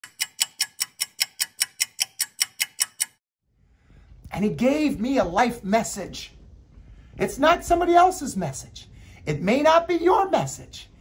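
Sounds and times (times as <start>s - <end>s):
stopwatch ticking: 0.0s - 3.2s.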